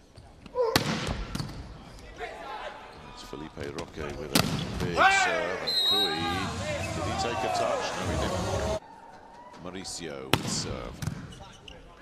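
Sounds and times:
arena noise: 0:00.0 - 0:12.0.

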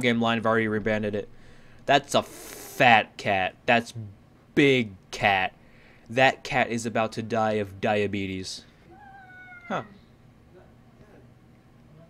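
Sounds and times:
cat meowing: 0:08.9 - 0:10.1.

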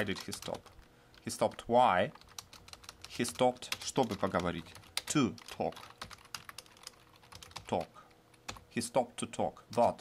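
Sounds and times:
computer keyboard typing: 0:00.0 - 0:08.7, 0:09.7 - 0:10.0.

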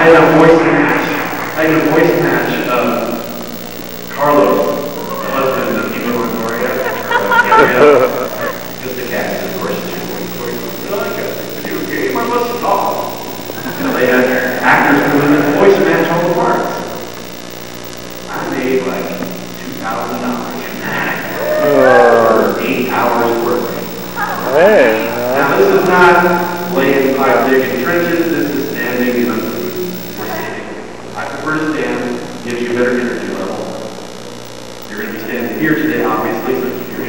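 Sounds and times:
man talking: 0:00.0 - 0:03.5, 0:04.1 - 0:16.8, 0:18.3 - 0:30.6, 0:34.9 - 0:37.0
person speaking: 0:00.0 - 0:17.2, 0:18.3 - 0:30.5, 0:34.9 - 0:37.0
electrical mains hum: 0:00.0 - 0:37.0.

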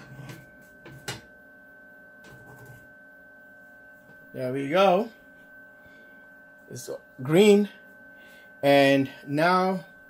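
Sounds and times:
high electrical whine and hum: 0:00.0 - 0:10.0.

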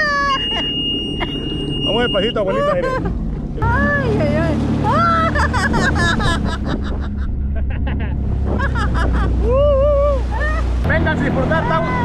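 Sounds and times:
jet ski engine humming: 0:00.0 - 0:12.0
water washing along hull: 0:00.0 - 0:12.0.

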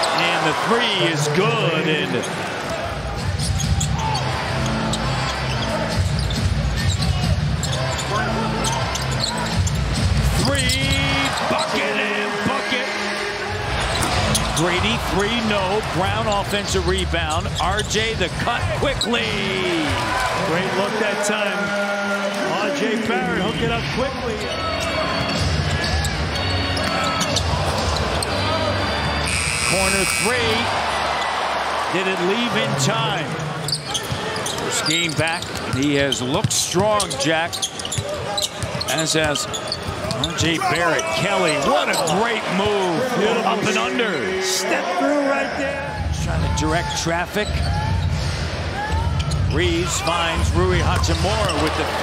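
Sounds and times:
crowd noise: 0:00.0 - 0:52.0.

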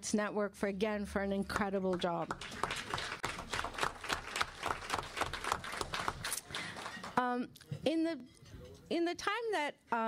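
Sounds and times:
audience applauding: 0:02.3 - 0:07.2.

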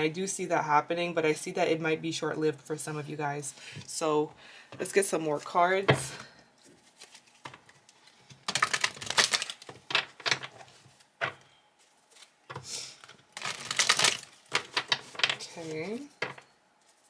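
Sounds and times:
cards being shuffled: 0:06.6 - 0:17.0.

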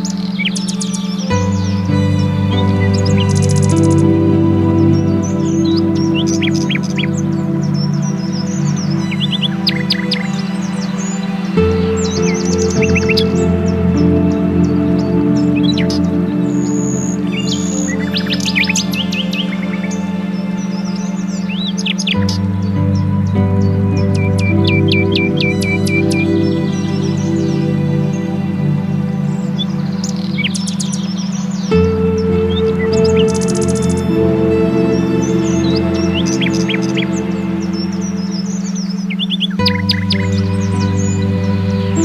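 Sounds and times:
ambient music sustained chords: 0:00.0 - 0:42.0
songbirds chirping: 0:00.0 - 0:42.0.

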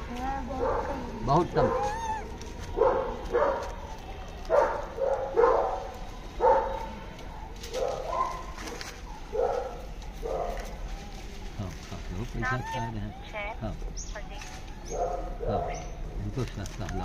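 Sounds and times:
dog barking: 0:00.5 - 0:02.0, 0:02.8 - 0:10.7, 0:14.8 - 0:16.0.

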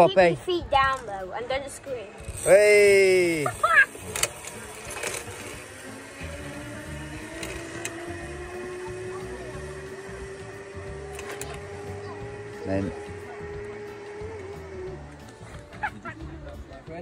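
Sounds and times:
zip wire trolley whine: 0:01.6 - 0:16.6.

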